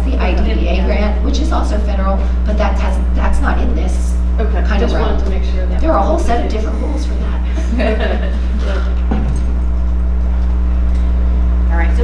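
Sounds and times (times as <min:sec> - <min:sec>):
person speaking: 0:00.0 - 0:07.8
low background hum: 0:00.0 - 0:12.0.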